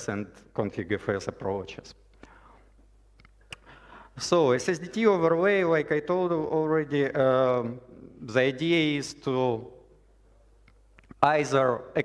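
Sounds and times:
soft breath: 2.1 - 2.8, 3.5 - 4.2.

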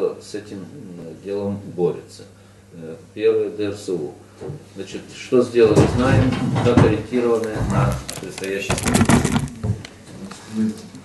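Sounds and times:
man speaking: 0.0 - 4.2, 4.8 - 8.8.

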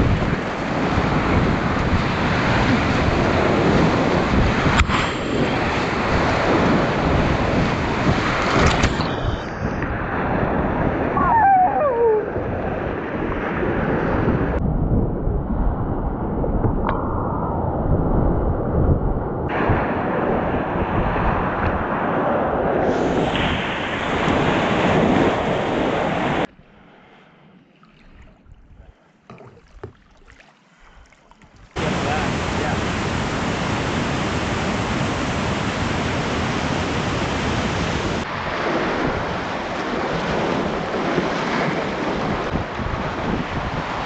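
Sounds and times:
wind on microphone: 0.0 - 26.8, 31.4 - 44.0
whitewater rapids rushing: 31.8 - 38.3.

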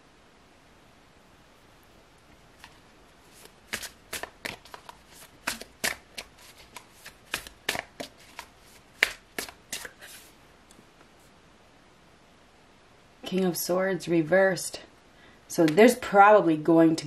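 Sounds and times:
cards being shuffled: 2.6 - 10.3.

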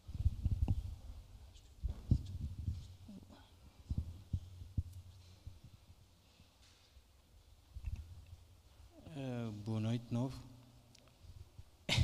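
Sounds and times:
microphone handling thumps: 1.8 - 3.0.

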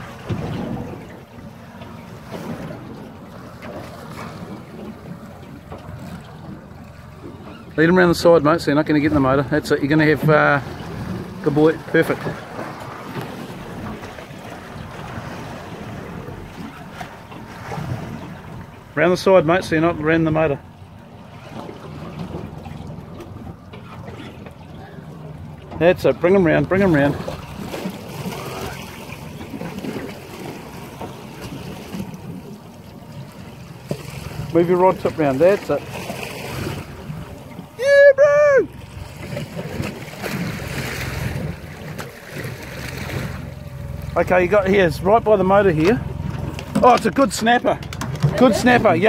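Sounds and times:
water washing around boat: 0.0 - 49.0.

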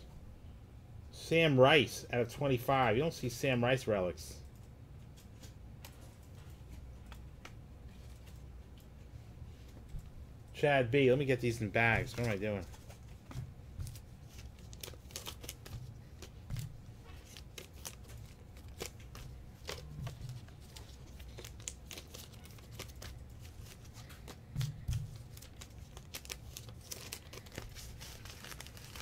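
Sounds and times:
plastic sleeves crinkling: 11.2 - 29.0.

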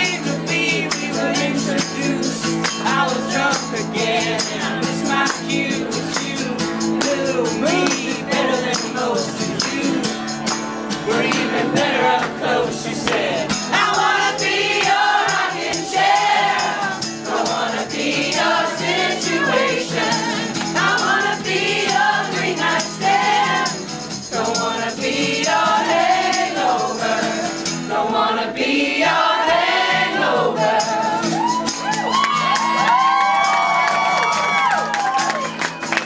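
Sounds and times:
man and woman singing: 0.0 - 10.3, 11.0 - 31.5
strummed acoustic guitar: 0.0 - 28.5
voices whooping: 30.8 - 35.9.

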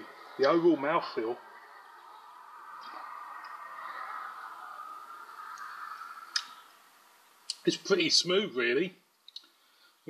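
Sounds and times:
soft hiss: 0.0 - 10.0.

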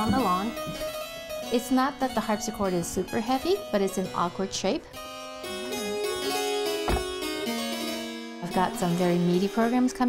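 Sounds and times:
harpsichord baroque music: 0.0 - 10.0
low thump: 6.9 - 7.2.

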